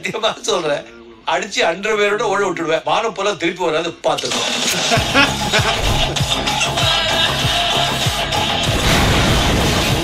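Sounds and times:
intense trailer music: 5.5 - 10.0
crash: 8.7 - 10.0.

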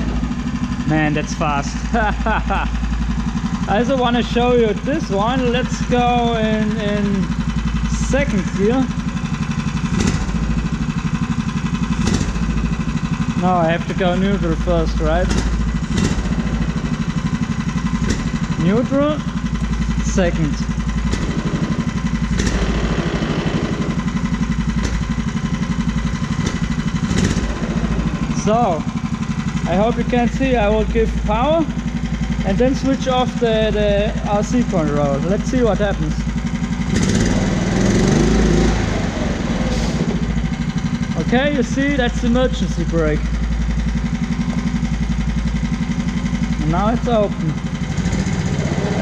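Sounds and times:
small engine idling with rapid putter: 0.0 - 49.0.

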